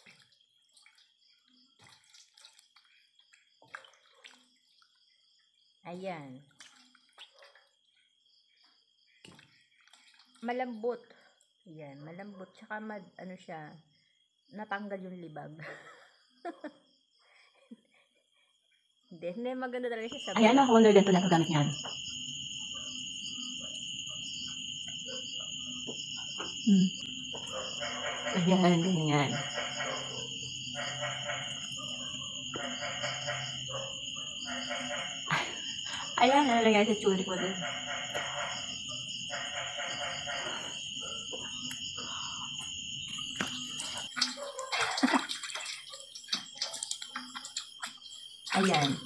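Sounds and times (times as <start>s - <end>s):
water splashing into steel basin: 0.0s - 4.9s, 6.5s - 7.6s, 43.1s - 49.0s
insect chirring: 0.0s - 12.3s, 18.4s - 49.0s.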